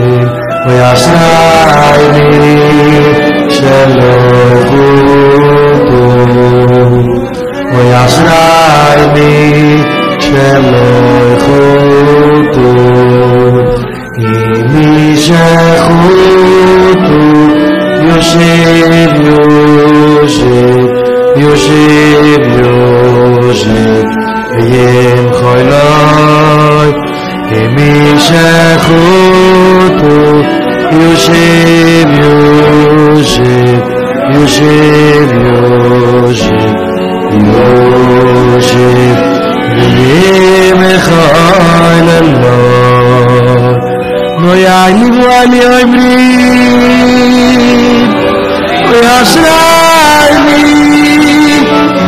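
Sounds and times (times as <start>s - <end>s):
men singing in unison: 0.0s - 52.0s.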